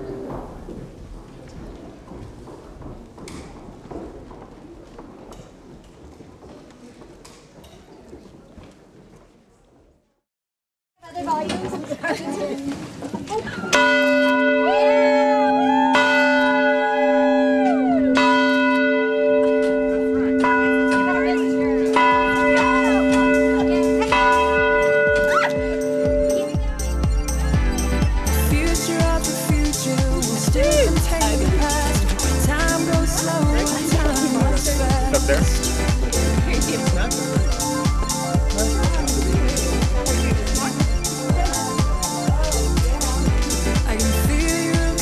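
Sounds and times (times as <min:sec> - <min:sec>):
footsteps on wooden floor: 0:00.0 - 0:10.0, 0:11.3 - 0:14.0
tower bell ringing: 0:13.7 - 0:43.6.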